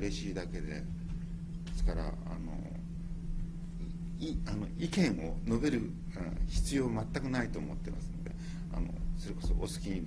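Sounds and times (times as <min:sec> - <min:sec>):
low electrical hum: 0:00.0 - 0:10.0
low room rumble: 0:00.0 - 0:10.0.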